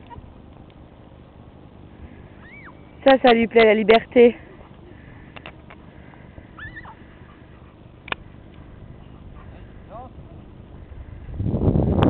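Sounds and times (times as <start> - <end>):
dog yelping: 2.4 - 2.8, 6.6 - 7.8.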